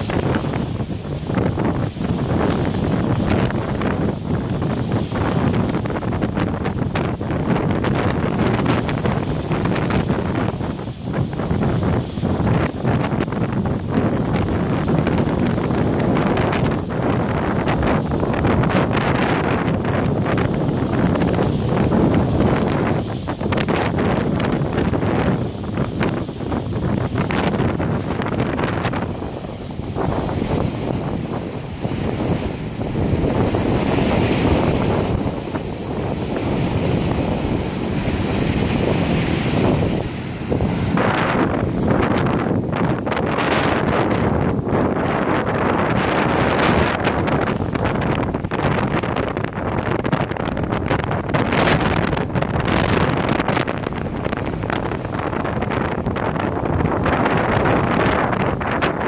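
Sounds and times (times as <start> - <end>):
storm surf breaking on rocks: 0.0 - 59.0
wind buffeting microphone: 0.0 - 59.0.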